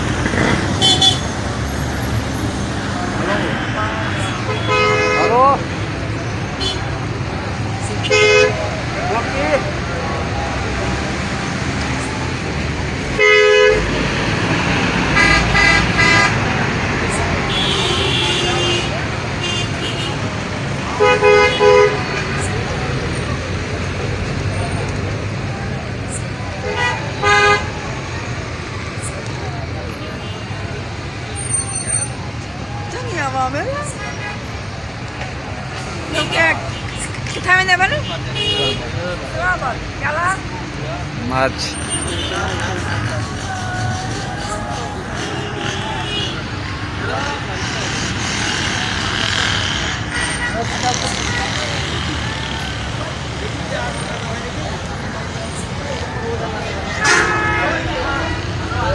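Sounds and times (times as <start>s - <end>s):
engine and road noise: 0.0s - 58.9s
car horns honking: 0.4s - 5.7s, 6.5s - 7.1s, 8.0s - 8.7s, 13.1s - 14.1s, 14.7s - 16.6s, 17.4s - 22.5s, 26.1s - 27.9s, 36.0s - 39.2s, 41.4s - 43.3s, 44.2s - 52.4s, 56.6s - 58.9s.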